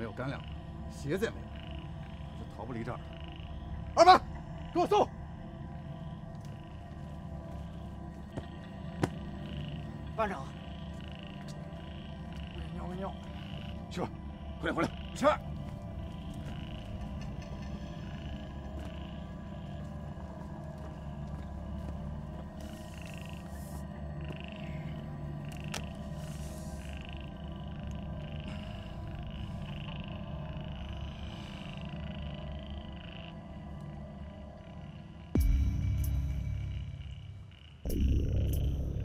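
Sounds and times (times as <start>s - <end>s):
frogs croaking: 0.0s - 39.0s
low music drone: 0.0s - 39.0s.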